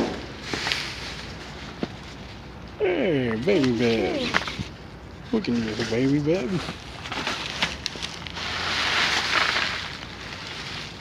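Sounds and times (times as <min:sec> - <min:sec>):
plastic bags rustling: 0:05.4 - 0:11.0.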